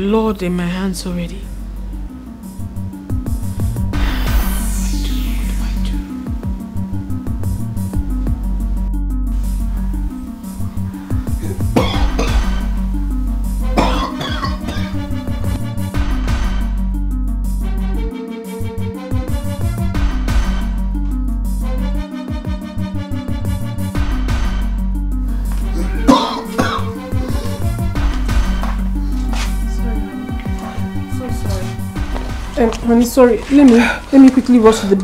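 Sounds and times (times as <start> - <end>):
background music with low notes: 0.0 - 35.0
man coughing: 11.3 - 12.6, 13.8 - 15.0, 25.6 - 27.8.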